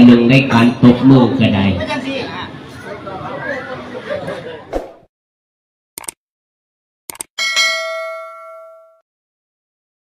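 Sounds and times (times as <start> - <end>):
notification bell ding: 7.4 - 9.0.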